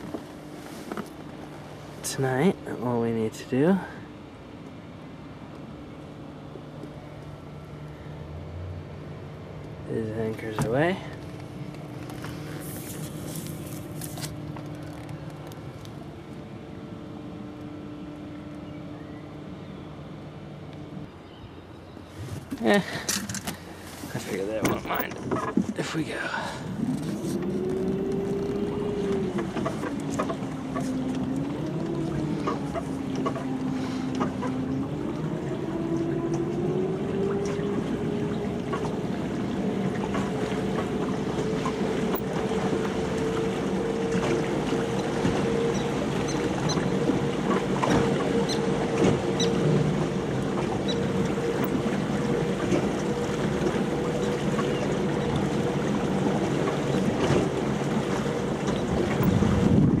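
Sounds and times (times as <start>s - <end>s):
electric boat motor whining: 0.0s - 60.0s
water rushing along hull: 0.0s - 60.0s
wind on microphone: 58.9s - 60.0s.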